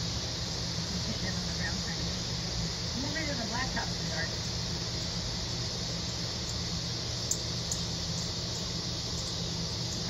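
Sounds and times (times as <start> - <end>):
outdoor background hum and hiss: 0.0 - 10.0.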